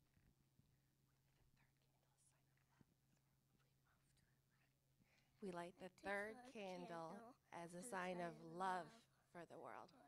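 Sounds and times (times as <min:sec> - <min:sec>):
faint rustles or whispers: 0:00.1 - 0:05.4.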